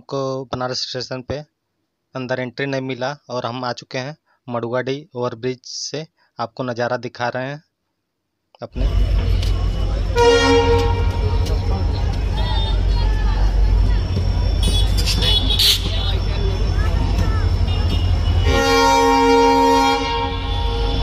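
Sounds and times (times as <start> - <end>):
locomotive horn blasts: 8.8 - 13.1, 14.5 - 21.0
low train rumble: 8.8 - 21.0.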